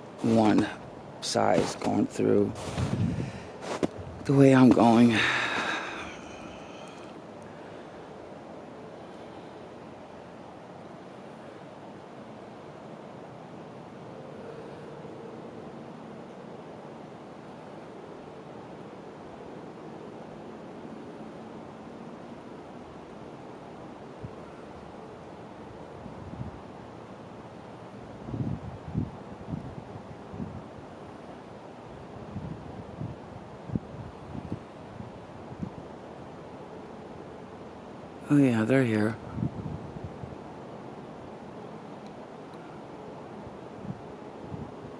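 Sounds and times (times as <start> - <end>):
wind buffeting microphone: 0.0 - 5.7, 28.2 - 30.7, 32.2 - 35.8, 39.2 - 40.4
steady wind: 0.0 - 44.9.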